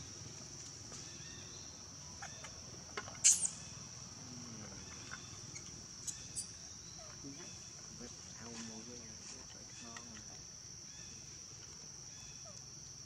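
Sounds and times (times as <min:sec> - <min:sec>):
insects droning: 0:00.0 - 0:13.0.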